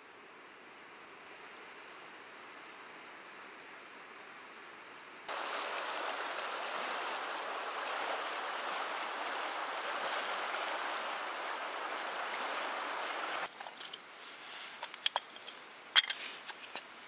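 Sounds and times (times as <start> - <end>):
river water rushing: 5.3 - 13.5.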